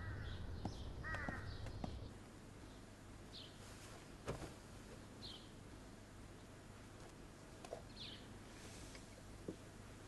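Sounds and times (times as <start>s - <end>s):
crows cawing faintly: 0.0s - 2.0s
low steady background hum: 0.0s - 10.0s.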